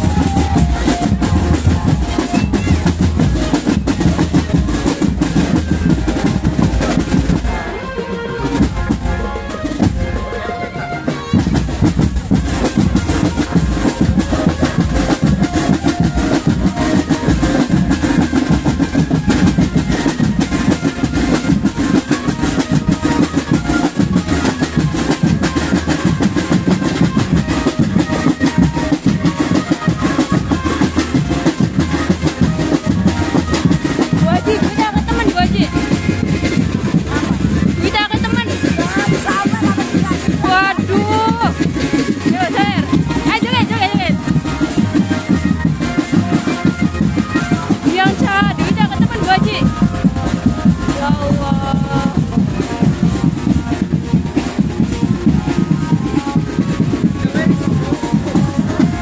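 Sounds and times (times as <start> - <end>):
marching drum band playing: 0.0 - 59.0.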